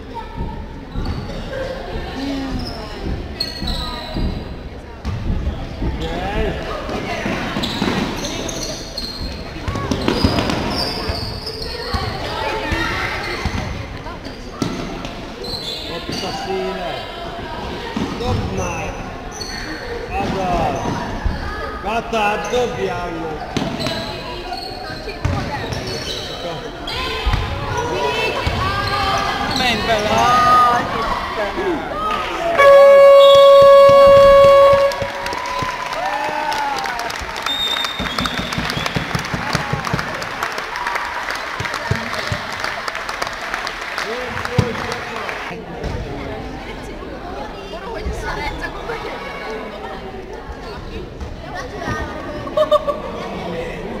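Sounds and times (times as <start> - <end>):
basketball bouncing on court: 25.2 - 25.8, 32.7 - 35.7.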